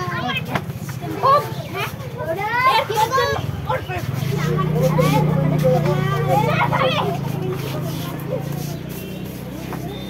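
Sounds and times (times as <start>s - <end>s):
young voices chattering: 0.0s - 10.0s.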